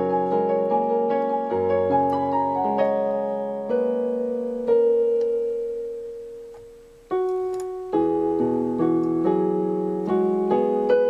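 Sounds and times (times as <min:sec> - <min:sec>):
gentle piano music: 0:00.0 - 0:11.0.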